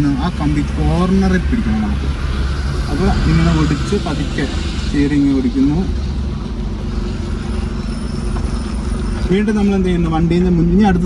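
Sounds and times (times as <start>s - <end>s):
car engine hum inside cabin: 0.0s - 11.0s.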